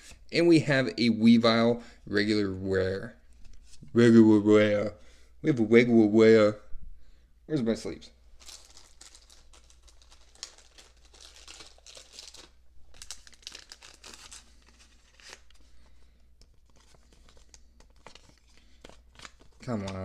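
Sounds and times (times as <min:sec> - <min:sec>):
plastic sleeves crinkling: 0:08.4 - 0:20.0.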